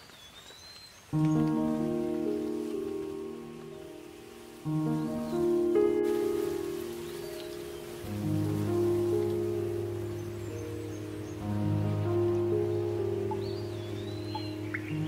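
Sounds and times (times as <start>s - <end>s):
ambient meditation music: 1.1s - 15.0s.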